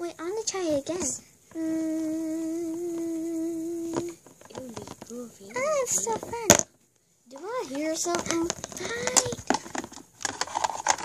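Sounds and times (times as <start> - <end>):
soft murmured voice: 0.9 - 6.4
child humming: 1.5 - 4.2.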